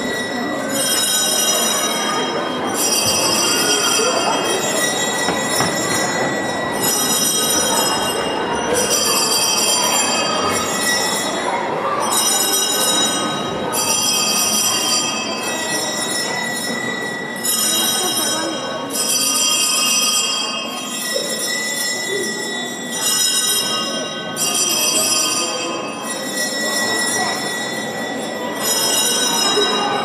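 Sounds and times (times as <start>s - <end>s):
small handbells ringing: 0.0s - 30.0s.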